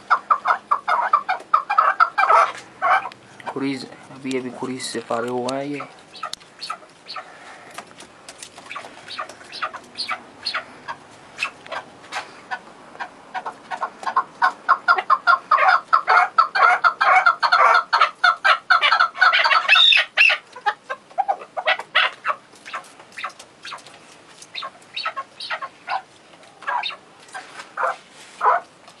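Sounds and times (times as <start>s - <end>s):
partridges clucking: 5.3s - 28.6s.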